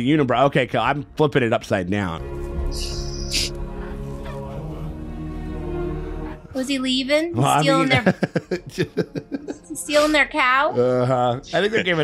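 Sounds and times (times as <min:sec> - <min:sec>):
film music with held tones: 0:00.0 - 0:12.0.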